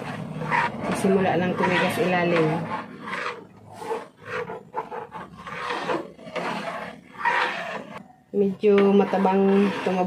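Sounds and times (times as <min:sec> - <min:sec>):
utensil scraping metal pot: 0:00.0 - 0:10.0.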